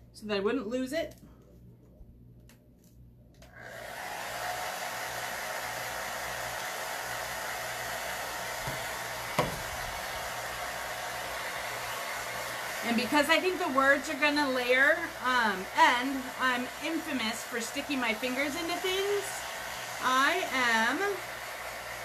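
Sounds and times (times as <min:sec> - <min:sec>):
blow dryer blowing: 0:03.5 - 0:22.0.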